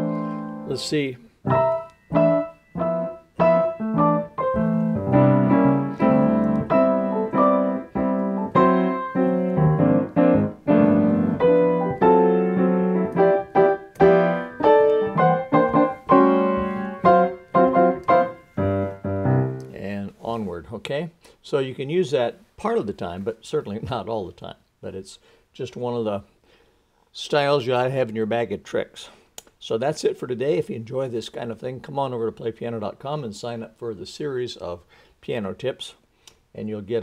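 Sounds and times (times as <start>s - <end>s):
grand piano chords: 0.0s - 19.8s.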